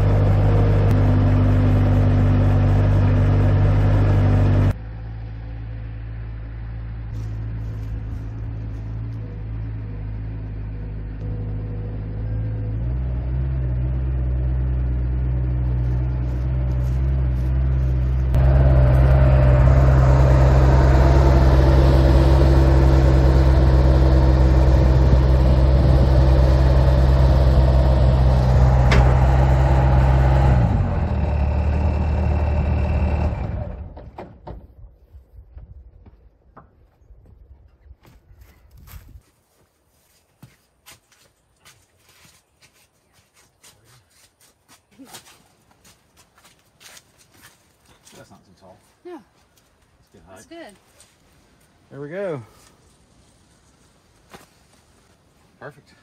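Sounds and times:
diesel loader engine droning: 0.0s - 34.5s.

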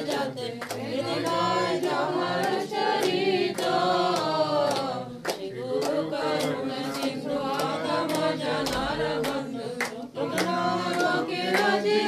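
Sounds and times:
group singing devotional song: 0.0s - 12.0s.

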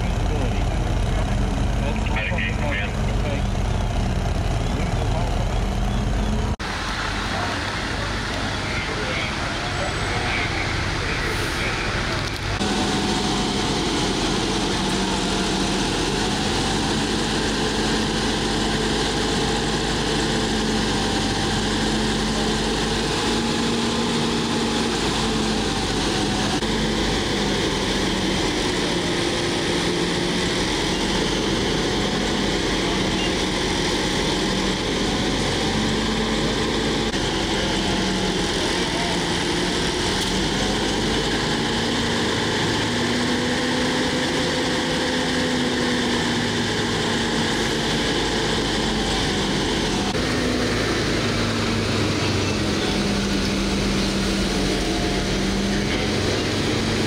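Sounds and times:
diesel engine droning: 0.0s - 57.0s.

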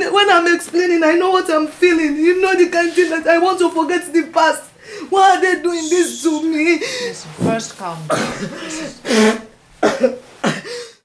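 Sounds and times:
woman sobbing: 4.8s - 7.4s, 8.0s - 11.0s.

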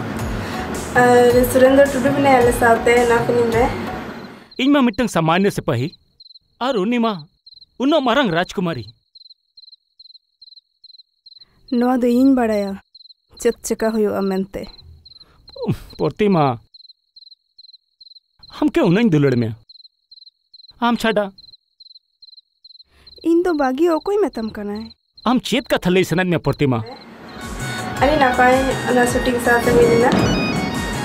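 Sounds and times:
crickets chirping: 3.2s - 31.0s.

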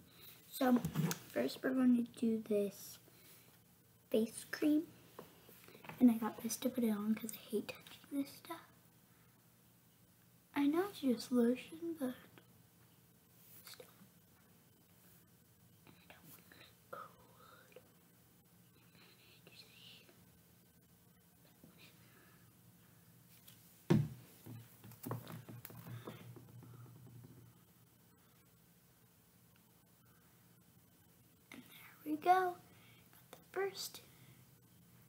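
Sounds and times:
soft whispering: 0.0s - 5.0s, 5.6s - 8.8s, 10.6s - 12.5s, 13.4s - 14.5s, 15.8s - 18.0s, 18.6s - 20.3s, 31.5s - 34.4s
faint room hum: 0.0s - 35.0s.

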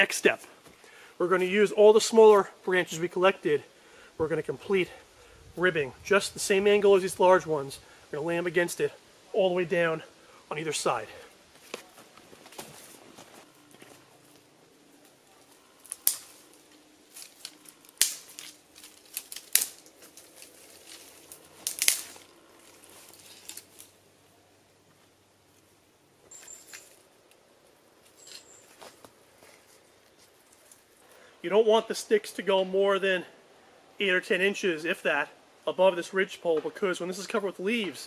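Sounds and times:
quiet rustling: 10.0s - 31.4s
sticks cracking and knocking: 13.7s - 24.0s.

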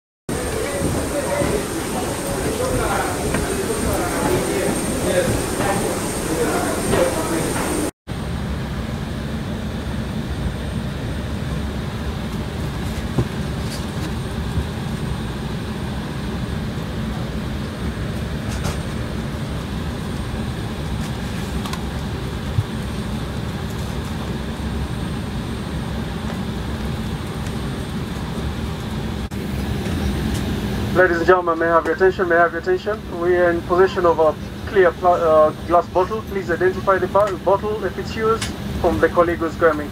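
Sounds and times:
constant low hum: 0.3s - 39.9s.

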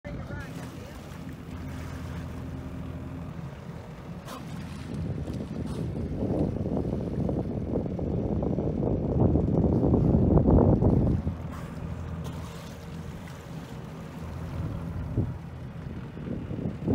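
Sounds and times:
boat motor humming: 0.0s - 16.9s
wind buffeting microphone: 1.5s - 16.9s.

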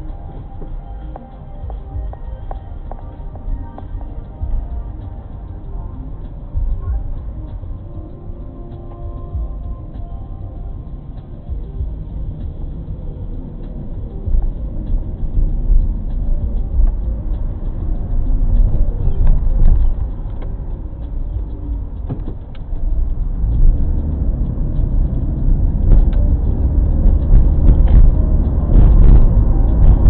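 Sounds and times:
car engine and road noise: 0.0s - 30.0s.

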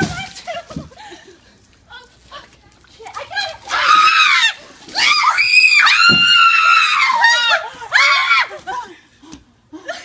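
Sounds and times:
woman screaming: 3.7s - 8.8s.

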